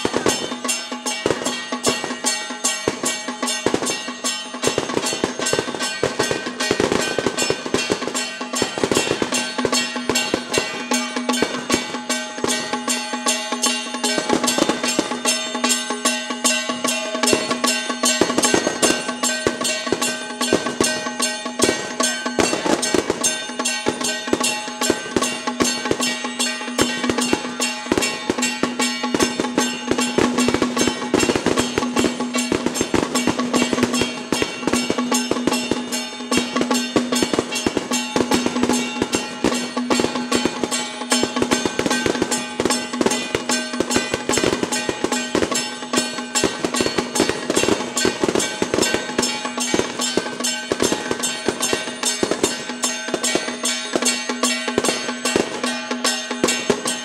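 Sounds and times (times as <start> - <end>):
drums gongs and cymbals: 0.0 - 57.0.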